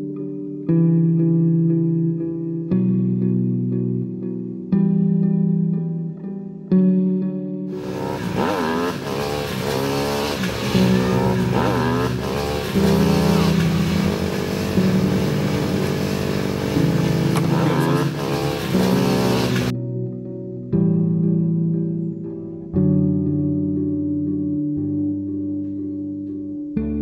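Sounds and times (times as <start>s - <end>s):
background music with low notes: 0.0s - 27.0s
motorcycle engines revving: 7.7s - 19.7s.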